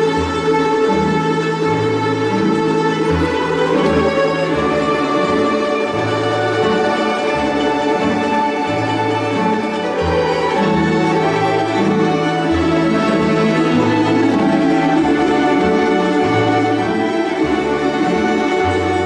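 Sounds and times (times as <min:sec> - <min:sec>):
folk orchestra plucked strings: 0:00.0 - 0:19.0.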